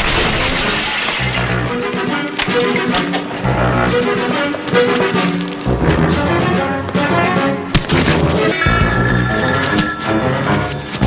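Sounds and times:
crash of something breaking: 0.0 - 1.5
background music: 0.0 - 11.0.

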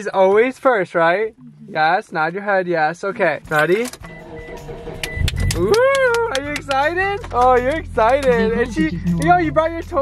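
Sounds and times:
car engine starting and idling: 3.4 - 10.0.

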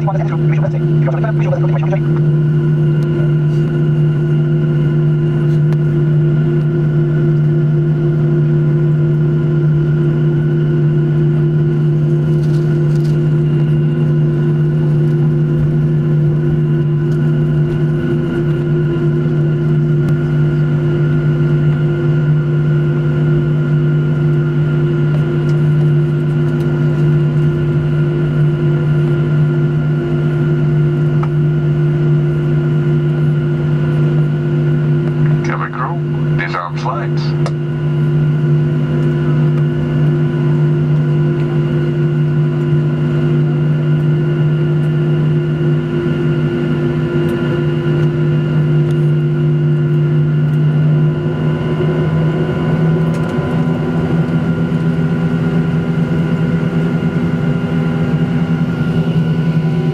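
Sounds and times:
jet engines idling in cabin: 0.0 - 59.9.

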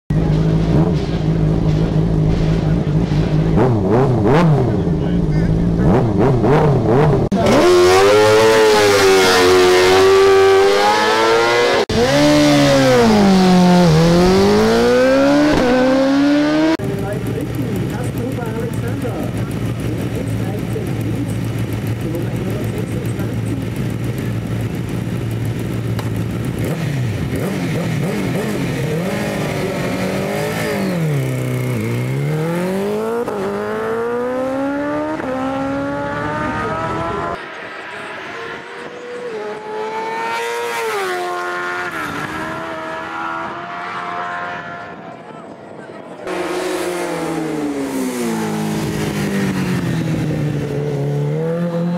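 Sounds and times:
motorcycle engine revving: 0.1 - 51.9
motorcycle engine idling: 16.8 - 29.8.

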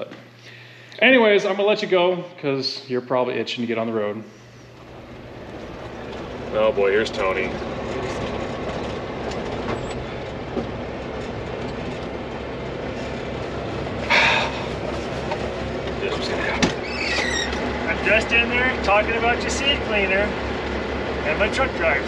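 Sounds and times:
diesel engine idling: 4.3 - 22.0.

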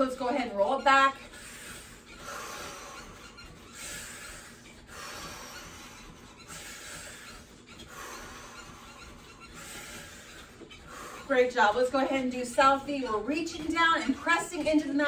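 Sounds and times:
woman breathing deeply: 1.2 - 11.3.

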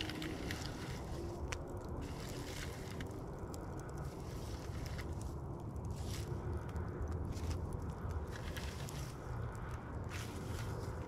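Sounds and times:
low steady rumble: 0.0 - 11.0
wood embers crackling and popping: 0.0 - 11.0.

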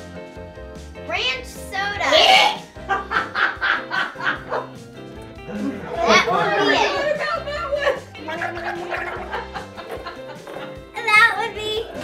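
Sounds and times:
light background music: 0.0 - 12.0
child laughing: 5.6 - 12.0.

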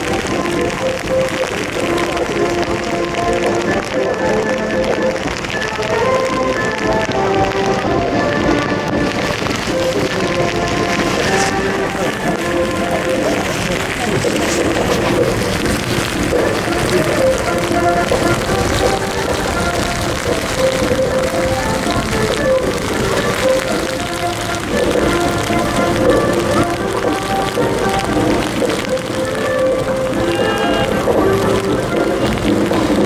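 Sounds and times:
heavy rain falling: 0.0 - 33.0
military band playing a march: 0.0 - 33.0.

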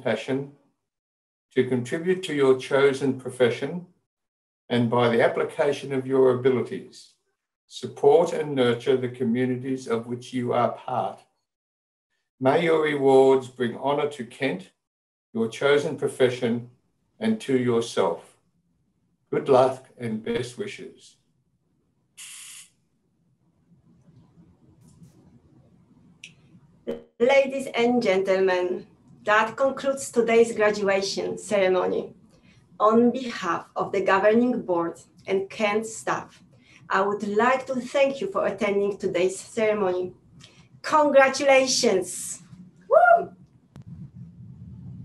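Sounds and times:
short steady hiss: 22.2 - 22.8
woman whooping: 42.9 - 43.3.

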